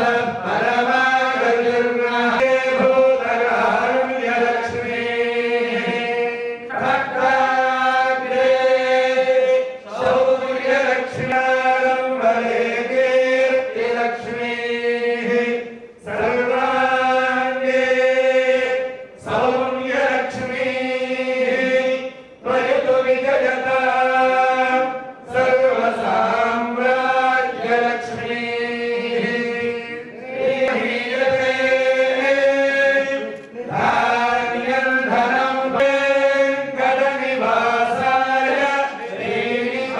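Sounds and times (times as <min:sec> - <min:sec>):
group of voices chanting: 0:00.0 - 0:39.9.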